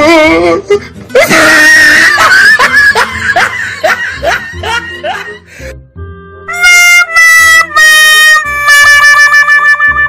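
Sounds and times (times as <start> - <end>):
comic wailing cry: 0.0 - 3.1
high-pitched scream: 1.2 - 2.6.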